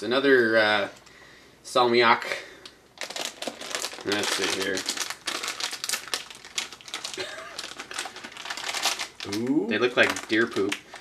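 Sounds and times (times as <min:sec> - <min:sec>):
plastic bag crinkling: 0:03.0 - 0:11.0.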